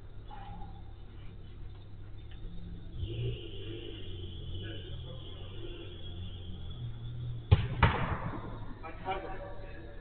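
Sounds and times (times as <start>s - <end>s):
low steady hum: 0.0s - 10.0s
faint voices: 2.6s - 7.5s
football kick thuds: 7.5s - 8.5s.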